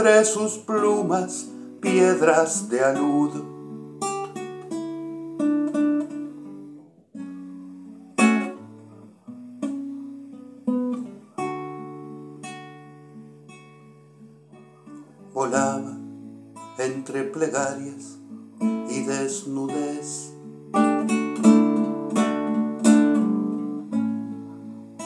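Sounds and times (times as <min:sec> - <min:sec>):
classical guitar playing: 0:00.0 - 0:25.0.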